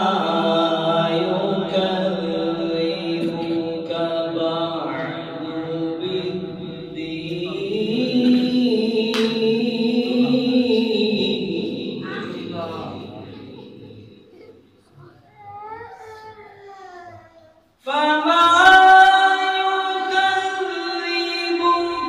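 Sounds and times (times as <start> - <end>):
man reciting melodically: 0.0 - 14.4, 17.8 - 22.0.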